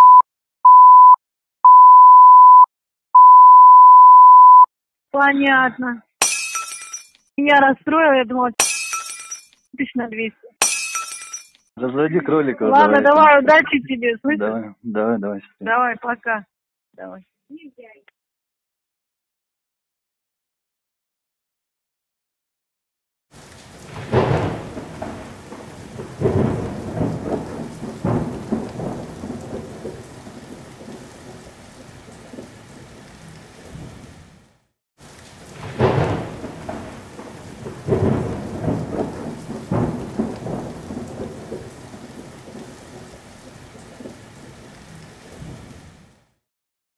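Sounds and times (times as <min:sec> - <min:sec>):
steady rain: 0:23.3 - 0:46.4
thunder rolling: 0:23.7 - 0:32.6, 0:35.4 - 0:44.3.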